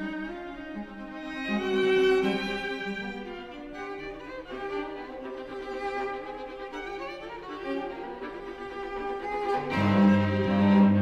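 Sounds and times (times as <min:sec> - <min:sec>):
string trio playing: 0:00.0 - 0:11.0
cello low held notes: 0:09.0 - 0:11.0.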